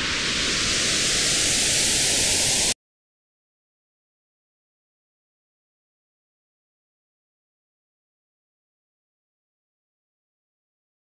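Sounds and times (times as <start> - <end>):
synthesized noise whoosh: 0.0 - 2.8.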